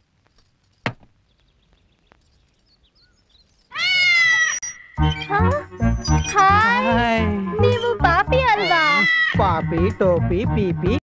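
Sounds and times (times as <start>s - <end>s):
background music with steady beat: 5.0s - 11.0s.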